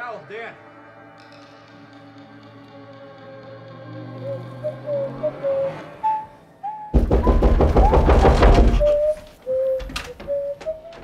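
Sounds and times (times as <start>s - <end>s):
flute melody: 3.5s - 11.0s
rapid knocking: 7.0s - 11.0s.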